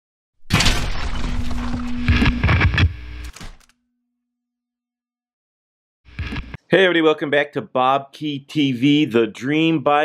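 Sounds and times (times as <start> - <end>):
loud crashing noise: 0.5 - 2.8.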